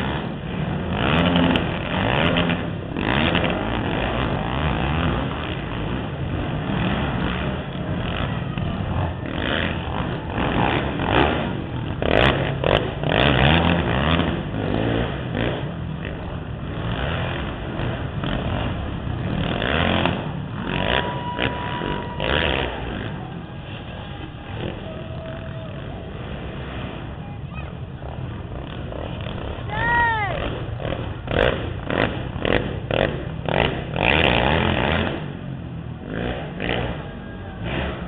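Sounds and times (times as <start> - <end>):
quad engines revving: 0.0 - 38.0.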